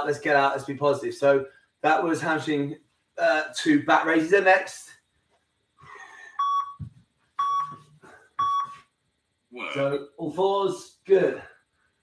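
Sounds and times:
short electronic beeps: 0:06.4 - 0:06.8, 0:07.4 - 0:08.8.

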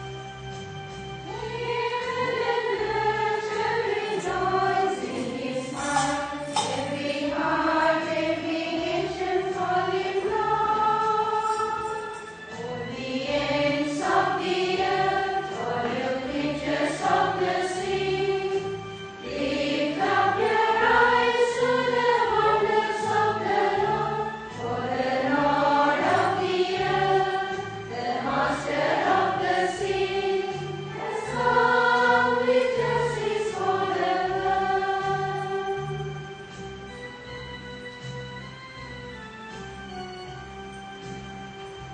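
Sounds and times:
choir singing a hymn: 0:01.2 - 0:37.0.

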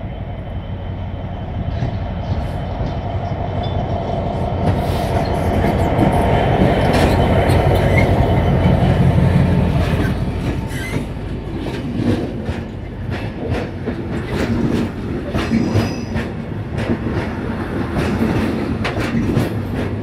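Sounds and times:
low train rumble: 0:00.0 - 0:20.0
train wheels clicking over rail joints: 0:00.9 - 0:20.0.

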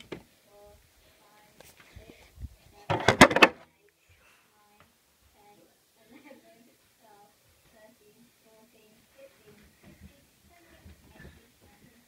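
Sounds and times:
clatter of sharp knocks: 0:02.9 - 0:03.6.

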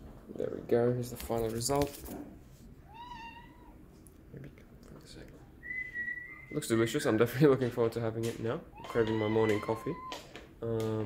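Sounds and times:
cat meowing: 0:02.8 - 0:03.8, 0:08.7 - 0:10.3.

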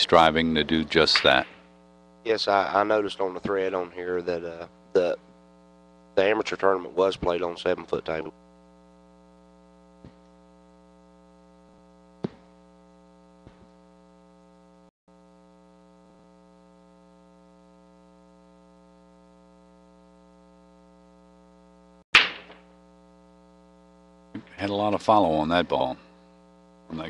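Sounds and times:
electrical hum: 0:00.0 - 0:27.0
pool balls cracking and scattering: 0:01.1 - 0:01.7, 0:12.2 - 0:12.6, 0:22.2 - 0:22.8.

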